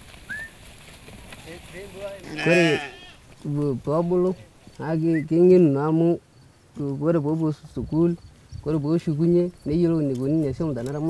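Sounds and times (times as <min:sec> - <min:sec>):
goats and sheep bleating: 0:01.9 - 0:04.6.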